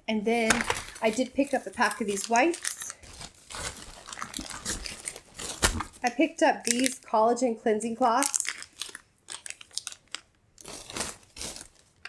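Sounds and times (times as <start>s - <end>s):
plastic packaging crinkling: 0.4s - 7.0s, 8.1s - 12.0s.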